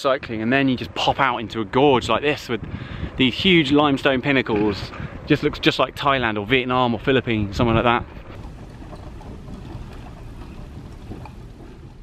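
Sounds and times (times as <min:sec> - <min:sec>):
wind noise on microphone: 0:00.2 - 0:12.0.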